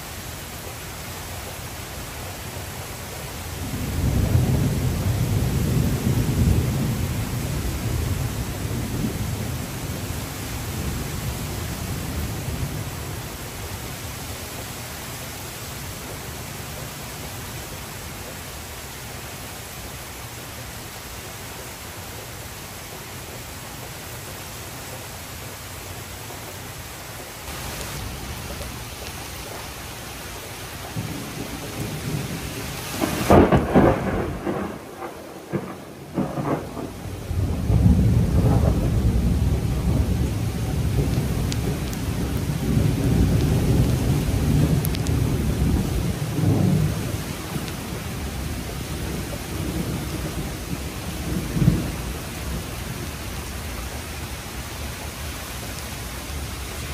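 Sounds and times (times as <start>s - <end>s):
heavy rain falling: 0.0s - 56.9s
rolling thunder rumble: 3.5s - 13.4s, 30.7s - 54.0s
thunder claps: 3.6s - 10.0s, 30.8s - 53.1s.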